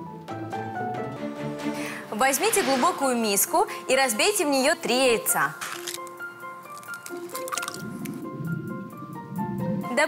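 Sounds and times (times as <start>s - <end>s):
light background music: 0.0s - 10.0s
eggs dropping into bowl: 5.6s - 8.1s
egg shell cracking: 5.6s - 8.2s.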